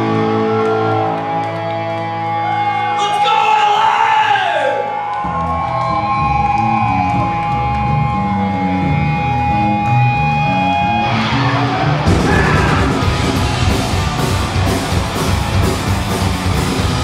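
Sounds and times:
bass line: 0:05.2 - 0:17.0
punk rock band playing: 0:06.3 - 0:17.0.

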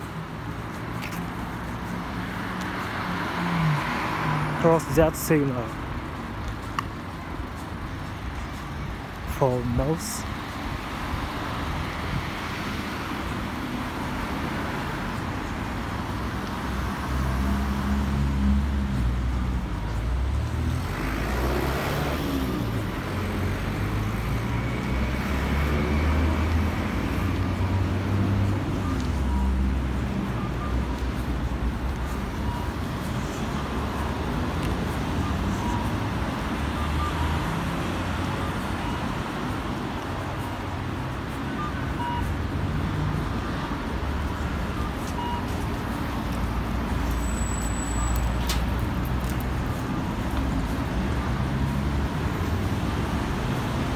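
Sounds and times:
rumble of cars going by: 0:00.0 - 0:53.9.

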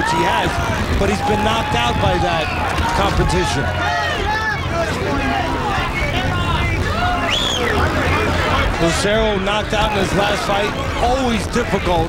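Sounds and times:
crowd talking and shouting: 0:00.0 - 0:12.0
low rumble: 0:00.0 - 0:12.0
high rising and falling call: 0:05.4 - 0:08.5.

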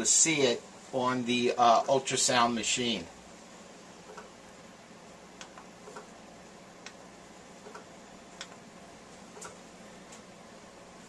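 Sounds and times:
low steady hiss: 0:00.0 - 0:11.0
faint irregular clicks: 0:07.6 - 0:08.7.

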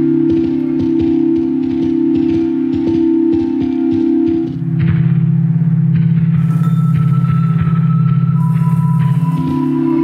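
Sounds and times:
ambient music low chord: 0:00.0 - 0:10.0.

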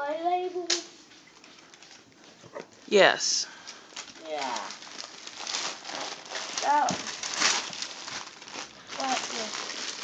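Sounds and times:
wrapping paper crinkling: 0:03.7 - 0:10.0.

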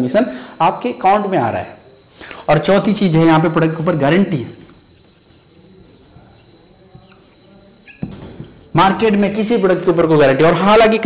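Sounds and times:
marker writing on whiteboard: 0:01.8 - 0:10.6.

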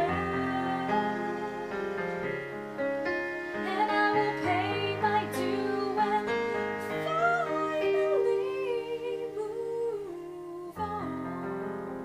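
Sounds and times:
woman singing: 0:00.0 - 0:02.4, 0:03.5 - 0:11.9
digital piano chords: 0:00.0 - 0:12.0.

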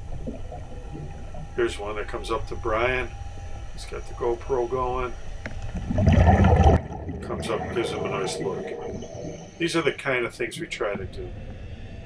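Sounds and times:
scuba bubbles gurgling underwater: 0:05.7 - 0:10.0.

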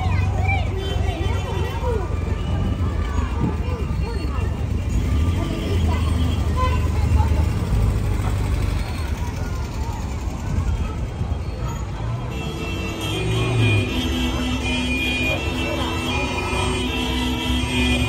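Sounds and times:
crowd chatter: 0:00.0 - 0:18.0.

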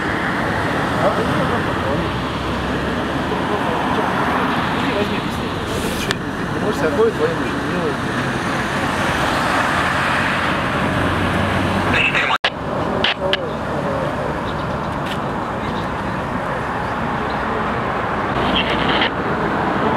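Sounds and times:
road traffic hiss: 0:00.0 - 0:19.9
faint voices: 0:00.7 - 0:08.9, 0:11.9 - 0:19.9.

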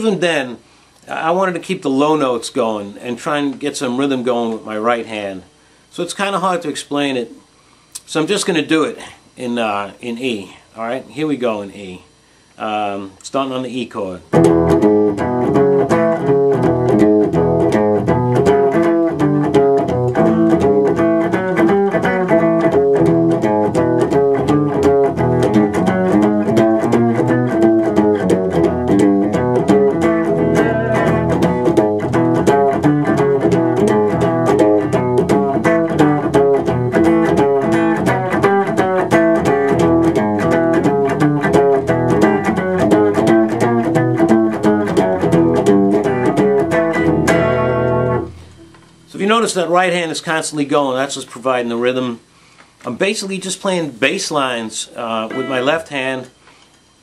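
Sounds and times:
blues guitar strumming: 0:14.2 - 0:50.1, 0:55.0 - 0:56.4.

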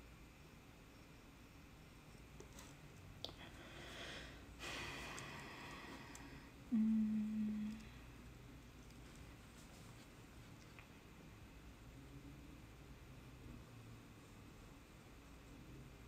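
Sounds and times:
person humming: 0:06.7 - 0:08.0.

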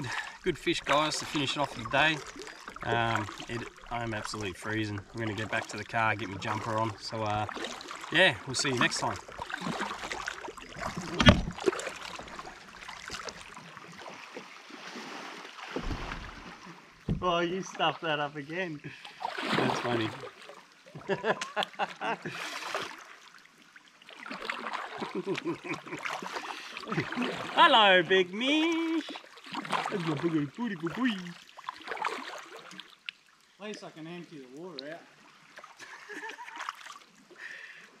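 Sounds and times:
paddle splashing in water: 0:00.0 - 0:18.0, 0:18.9 - 0:33.5, 0:35.1 - 0:37.3.

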